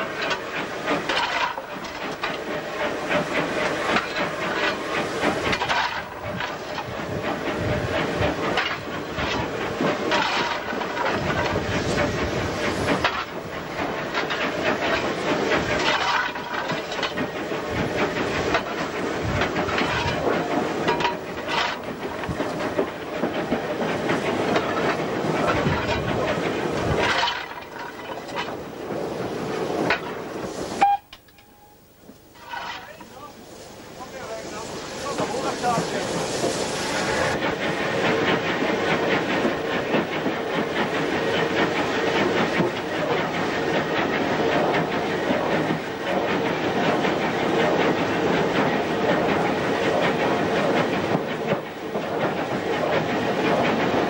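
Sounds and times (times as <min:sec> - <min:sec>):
steam hiss: 0:00.0 - 0:31.0, 0:32.3 - 0:54.0
steam locomotive clatter: 0:00.0 - 0:54.0.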